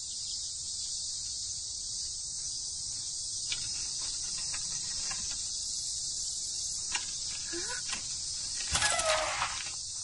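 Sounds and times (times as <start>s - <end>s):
cicadas chorus: 0.0s - 10.0s.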